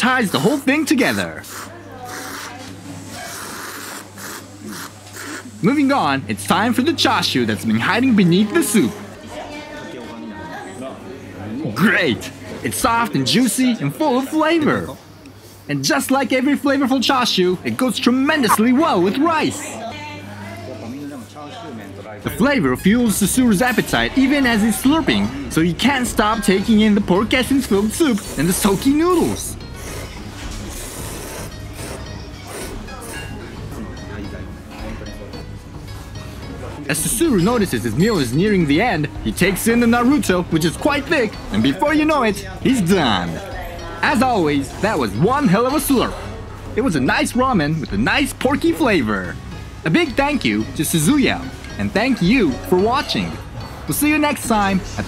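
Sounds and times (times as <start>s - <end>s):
person slurping noodles: 1.4s - 5.6s, 29.8s - 33.2s.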